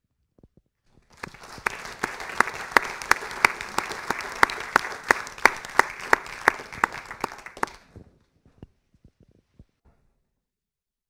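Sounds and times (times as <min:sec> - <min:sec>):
audience applauding: 0:01.1 - 0:07.9
loud close hand claps: 0:01.1 - 0:07.9.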